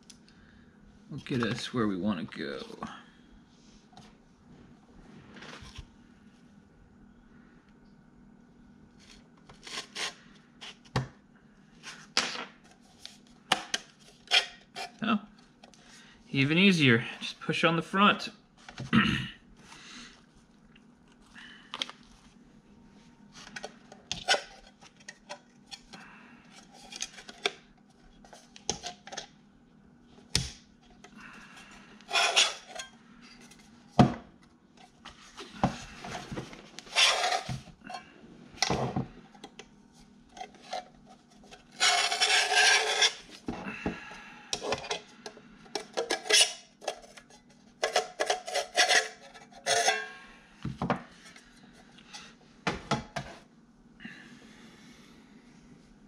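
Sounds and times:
metal parts scraping and clicking: 41.7s - 43.2s.

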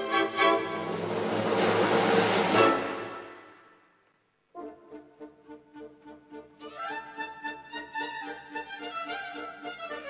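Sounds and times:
orchestral ballet music: 0.0s - 3.7s, 4.6s - 10.0s.

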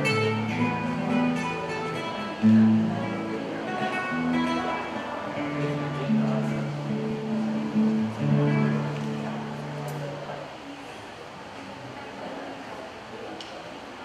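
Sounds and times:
acoustic guitar playing slowly: 0.0s - 10.6s.

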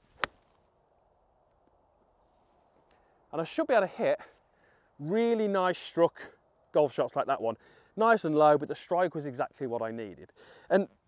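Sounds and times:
golf iron striking ball: 0.2s - 0.4s.

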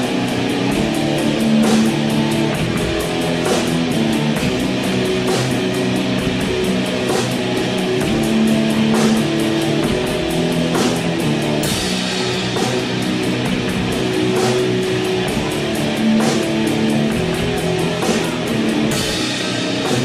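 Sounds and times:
cymbal crashes: 0.0s - 20.0s
stoner rock music: 0.0s - 20.0s.

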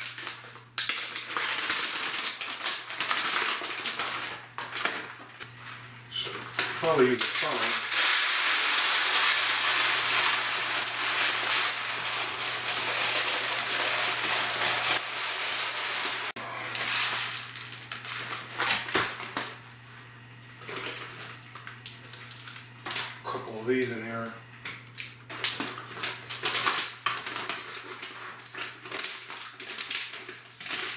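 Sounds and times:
dry food pouring into container: 6.8s - 18.4s
bag rustling: 9.2s - 18.4s.

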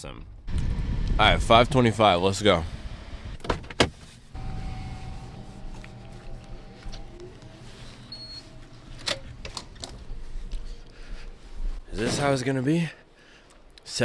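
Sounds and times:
steady low hum: 4.3s - 13.8s.

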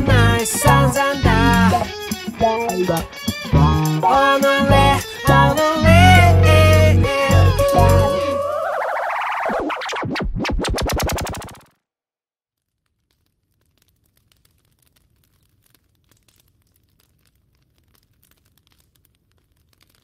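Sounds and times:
wood fire crackling: 0.0s - 8.5s, 12.6s - 20.0s
synthesizer pitch sweep and pulses: 3.5s - 4.1s, 4.7s - 11.7s.

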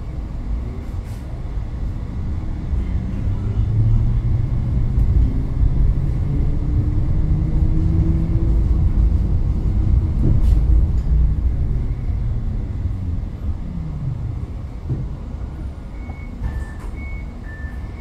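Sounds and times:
tram motor hum: 0.0s - 18.0s
tram rumbling on rails: 0.0s - 18.0s.

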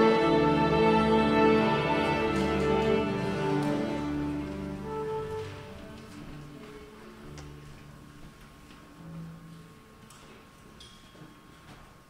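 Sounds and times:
soft orchestra low held notes: 0.0s - 12.0s.

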